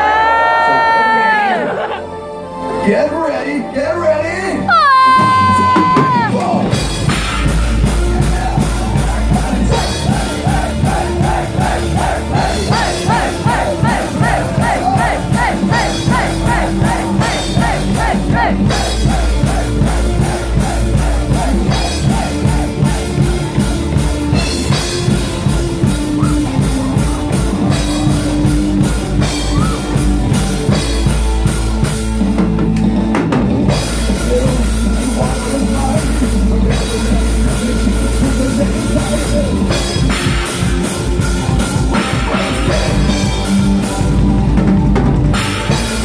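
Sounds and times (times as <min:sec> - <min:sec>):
distorted electric guitars: 0:04.8 - 0:46.0
fast drumming: 0:04.9 - 0:46.0
repeating guitar lead line: 0:06.7 - 0:32.1.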